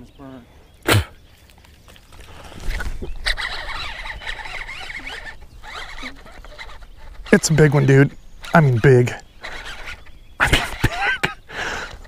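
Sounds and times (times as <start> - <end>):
fishing reel whirring rattle: 2.5 - 11.0.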